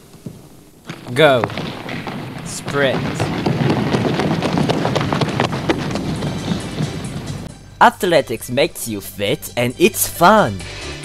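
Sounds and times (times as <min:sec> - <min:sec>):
running footfalls on hall floor: 0:00.0 - 0:07.6.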